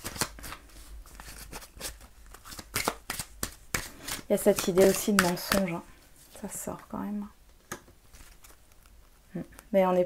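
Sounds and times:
cards snapping while shuffled: 0.0 - 0.6, 1.4 - 5.7.

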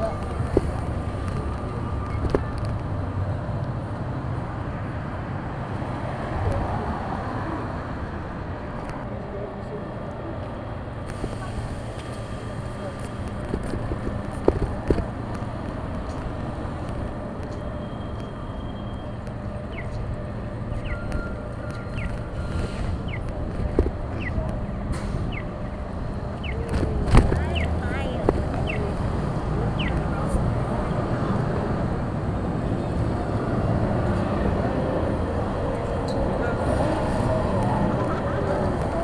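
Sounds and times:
traffic rumble: 0.0 - 39.0
indistinct voices: 19.0 - 39.0.

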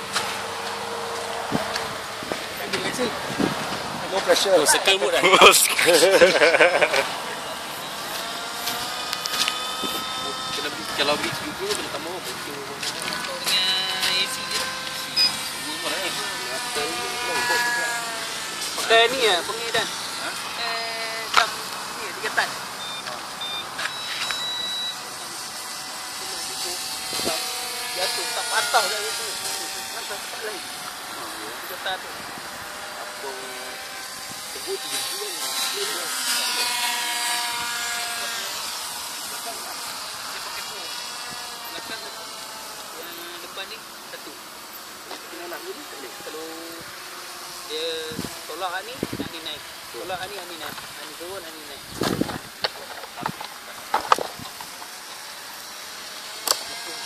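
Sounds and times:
small electric motor whining: 0.0 - 57.0.

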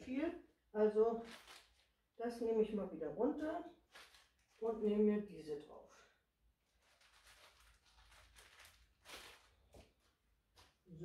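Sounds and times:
napkins rustling: 1.2 - 2.0, 3.8 - 4.8, 6.6 - 10.8.

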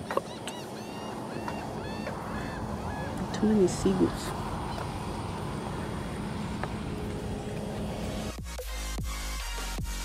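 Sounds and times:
high bird calls: 0.0 - 6.1
steady outdoor hiss: 0.0 - 10.0.

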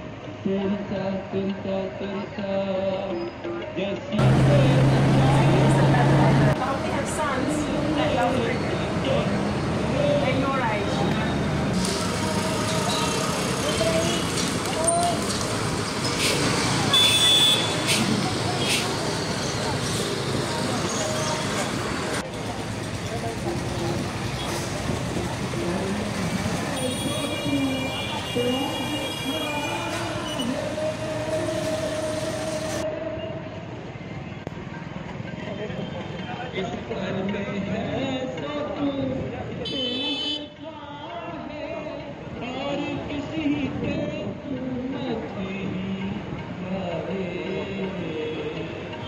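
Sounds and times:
voices chattering: 4.2 - 32.9
motorbike and scooter traffic: 4.2 - 49.0
long steady horn tone: 16.9 - 18.0, 26.7 - 30.9, 39.7 - 40.6.

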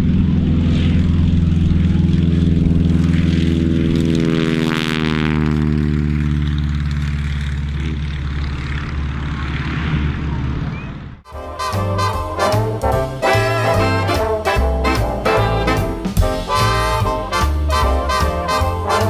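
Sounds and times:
aircraft radial engine and propeller: 0.0 - 11.4.

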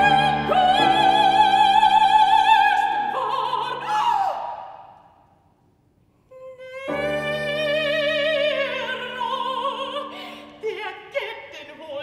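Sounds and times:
operatic soprano singing: 0.0 - 5.0, 6.3 - 12.0.

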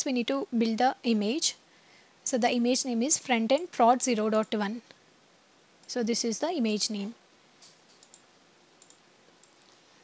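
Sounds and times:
computer mouse clicks: 7.6 - 9.8.

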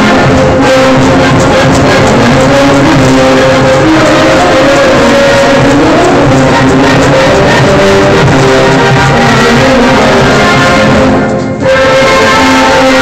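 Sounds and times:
loud dance music: 0.0 - 13.0.

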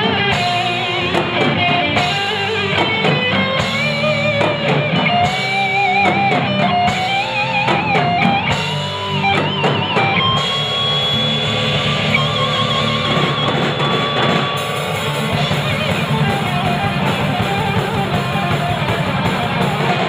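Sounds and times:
bass and drums: 0.0 - 20.0
distorted electric guitar lead: 0.0 - 20.0.

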